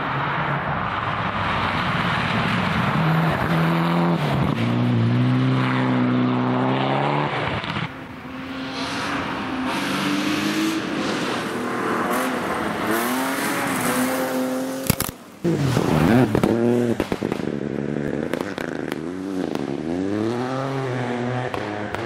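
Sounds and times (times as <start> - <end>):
rally car engine revving: 1.1 - 22.0
sharp crack: 14.8 - 17.6, 18.2 - 19.7.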